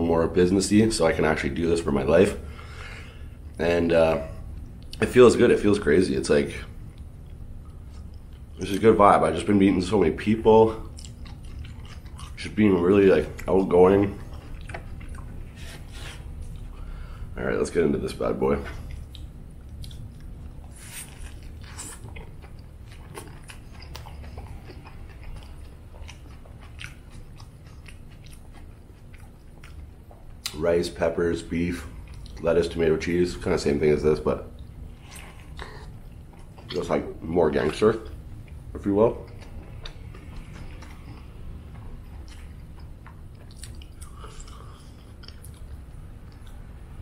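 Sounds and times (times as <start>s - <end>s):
low steady hum: 0.0s - 47.0s
chewing food: 6.7s - 10.1s, 10.7s - 17.1s, 18.6s - 30.6s, 31.8s - 32.5s, 34.5s - 46.8s.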